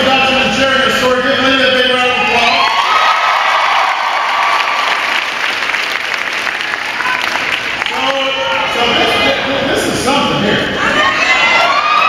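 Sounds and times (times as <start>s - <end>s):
large crowd applauding: 2.6s - 8.8s.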